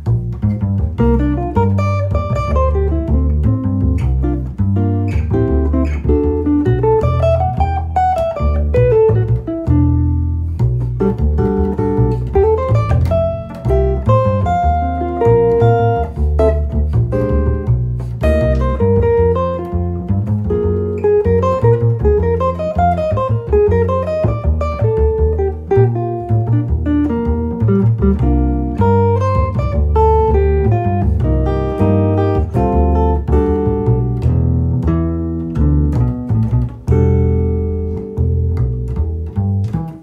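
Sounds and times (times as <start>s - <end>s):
electric guitar playing jazz: 0.0s - 40.0s
plucked upright double bass: 0.0s - 40.0s.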